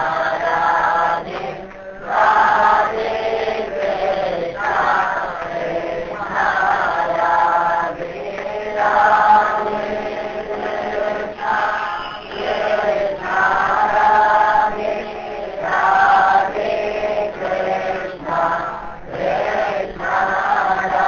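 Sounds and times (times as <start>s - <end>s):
voices chanting a mantra: 0.0s - 21.0s.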